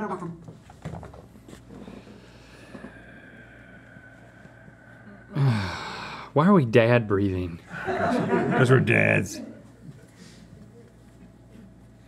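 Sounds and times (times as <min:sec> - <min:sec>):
men breathing heavily through noses: 0:01.6 - 0:06.4.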